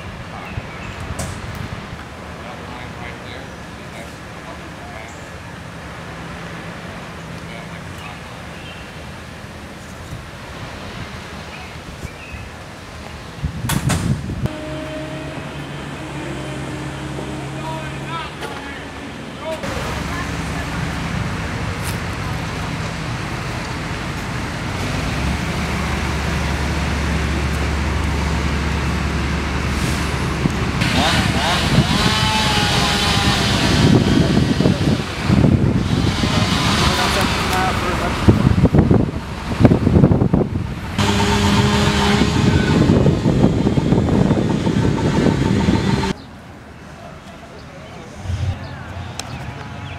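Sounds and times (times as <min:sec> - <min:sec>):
steady background noise: 0:00.0 - 0:49.9
wind on microphone: 0:10.0 - 0:14.6, 0:29.8 - 0:46.2
low engine hum: 0:12.6 - 0:46.7.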